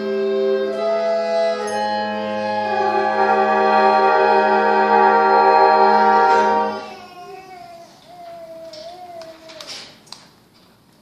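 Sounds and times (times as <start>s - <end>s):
concert band holding a chord: 1.6s - 6.8s.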